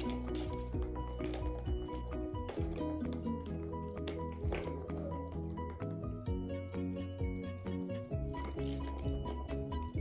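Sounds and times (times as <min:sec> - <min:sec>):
light percussion: 0:00.0 - 0:10.0
melodic background music: 0:00.0 - 0:10.0.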